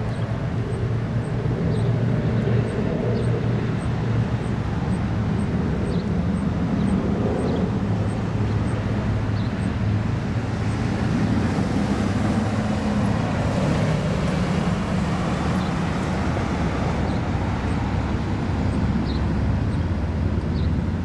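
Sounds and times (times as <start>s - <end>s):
vehicle engine humming: 0.0s - 21.0s.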